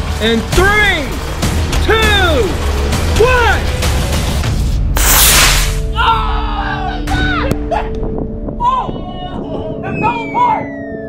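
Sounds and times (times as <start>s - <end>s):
background music: 0.0s - 11.0s
toy rocket launch whoosh: 5.0s - 5.8s.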